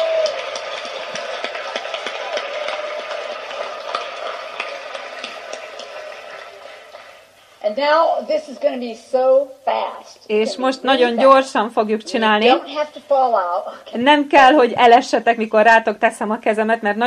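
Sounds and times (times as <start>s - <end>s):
audience cheering: 0.0s - 7.4s
audience applauding: 0.0s - 7.5s.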